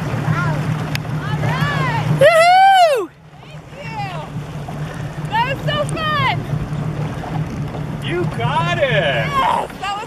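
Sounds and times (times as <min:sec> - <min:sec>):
motorboat engine idling: 0:00.0 - 0:10.0.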